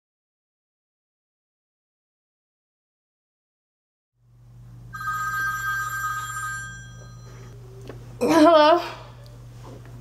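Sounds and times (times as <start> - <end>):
low steady hum: 4.2 - 10.0
telephone two-tone ring: 5.0 - 7.6.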